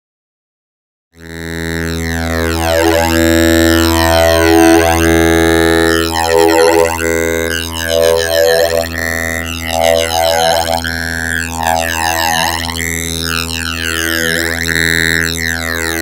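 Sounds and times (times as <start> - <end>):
phased oscillator drone: 1.3 - 16.0.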